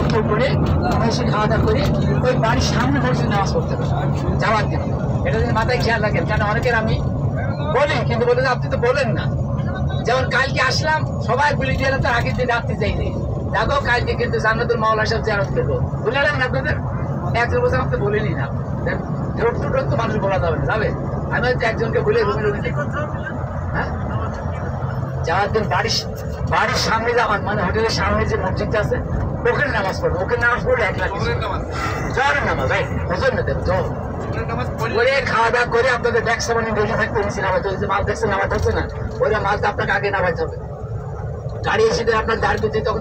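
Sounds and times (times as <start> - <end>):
engine low drone: 0.0 - 43.0
road noise: 0.0 - 43.0
voices talking: 0.0 - 43.0.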